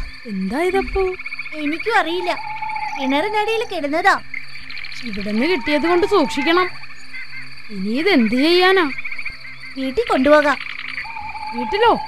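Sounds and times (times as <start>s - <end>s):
frogs croaking: 0.0s - 12.0s
child speaking: 0.3s - 4.2s, 5.0s - 6.8s, 7.7s - 9.0s, 9.8s - 10.6s, 11.5s - 12.0s.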